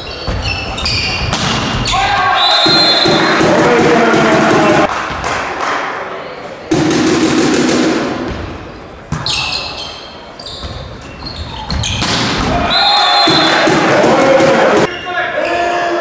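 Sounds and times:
shoes squeaking on court floor: 0:00.0 - 0:03.0, 0:08.3 - 0:12.4
ball hits: 0:01.1 - 0:01.9, 0:11.7 - 0:12.6
referee's whistle: 0:01.8 - 0:03.4, 0:12.6 - 0:13.7
players shouting: 0:01.8 - 0:04.9, 0:12.4 - 0:16.0.

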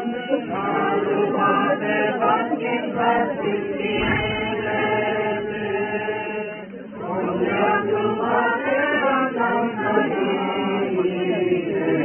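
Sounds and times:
crowd singing as a choir: 0:00.0 - 0:12.0.

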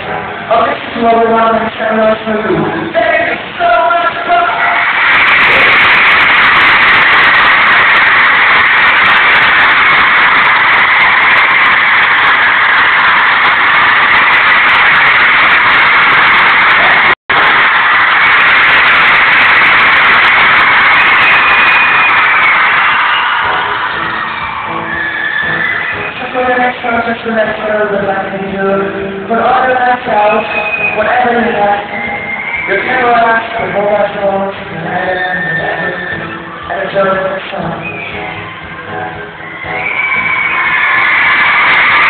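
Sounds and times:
crowd screaming and cheering: 0:02.8 - 0:27.1, 0:30.0 - 0:42.0.

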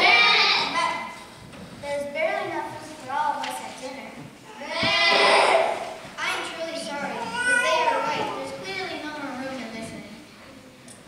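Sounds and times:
children calling out: 0:00.0 - 0:01.2, 0:04.4 - 0:09.1.

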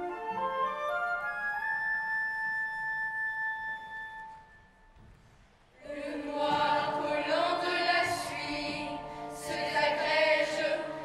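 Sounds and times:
orchestral music with woodwinds: 0:00.0 - 0:05.0, 0:05.9 - 0:11.0.

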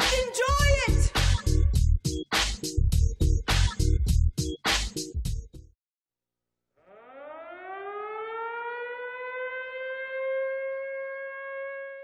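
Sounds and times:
air-raid siren wailing: 0:06.8 - 0:12.0.

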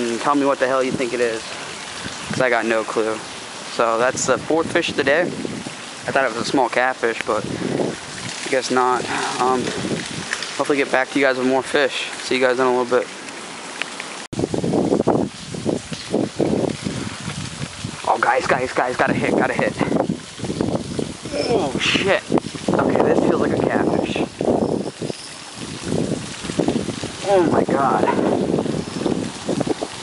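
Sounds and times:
wind buffeting microphone: 0:00.7 - 0:11.7, 0:14.3 - 0:30.0.

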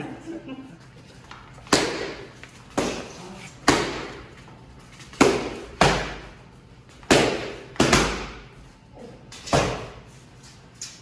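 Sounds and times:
boxing gloves punching mitts: 0:01.6 - 0:04.4, 0:05.0 - 0:08.6, 0:09.4 - 0:10.1.

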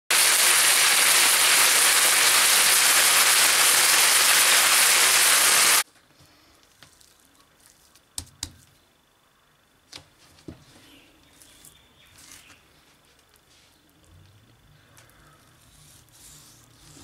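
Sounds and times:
meat sizzling in hot oil: 0:00.1 - 0:05.8.

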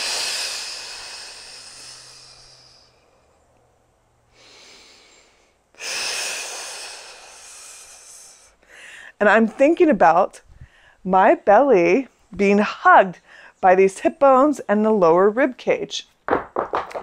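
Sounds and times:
woman exhaling forcefully: 0:00.0 - 0:03.2, 0:04.4 - 0:09.0
quiet inhale: 0:00.0 - 0:03.5, 0:04.2 - 0:09.2, 0:10.5 - 0:11.0, 0:13.2 - 0:13.6.

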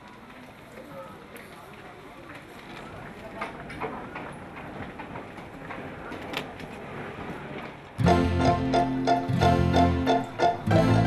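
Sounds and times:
low murmuring voices: 0:00.0 - 0:08.2.

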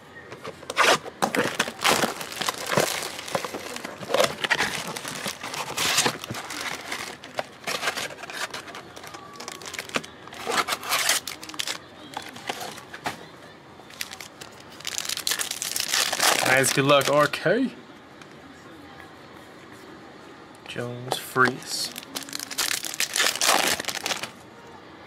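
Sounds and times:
plastic packs rustling: 0:00.4 - 0:13.3, 0:13.9 - 0:17.3, 0:21.8 - 0:24.4
plastic shrink-wrap tearing: 0:00.7 - 0:12.8, 0:13.9 - 0:17.2, 0:21.9 - 0:24.4.

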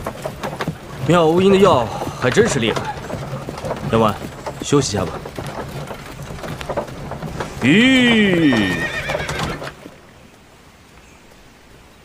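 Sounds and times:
horse whinny: 0:07.4 - 0:09.8.

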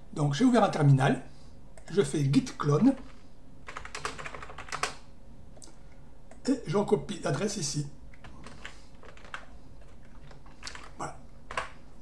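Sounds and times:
keyboard key presses: 0:08.2 - 0:11.8.

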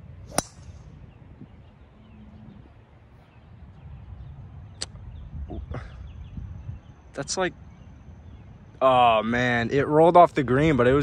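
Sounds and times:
wind rumble on microphone: 0:00.0 - 0:07.0
faint birdsong: 0:00.0 - 0:11.0.

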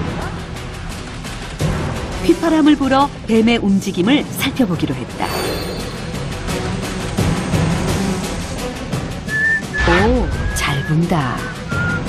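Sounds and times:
background music: 0:00.0 - 0:12.0
man whistling high notes: 0:09.3 - 0:12.0.

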